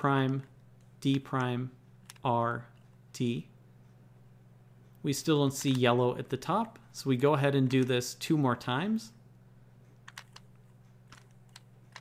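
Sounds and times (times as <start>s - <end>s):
puzzle cube plastic clicks: 0.2s - 2.3s, 10.0s - 12.0s.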